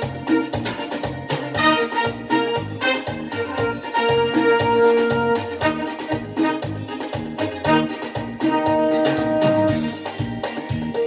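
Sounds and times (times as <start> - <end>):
keyboard melody with beat: 0.0 - 11.0.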